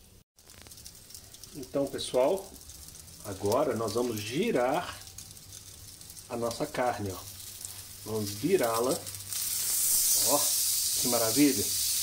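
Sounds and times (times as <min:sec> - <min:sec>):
meat sizzling on a grill: 0:00.0 - 0:12.0.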